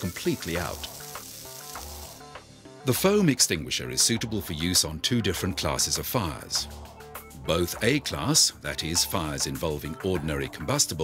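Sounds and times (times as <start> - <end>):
extinguisher spray hissing: 0.0 - 2.2
soft background music: 0.0 - 11.0.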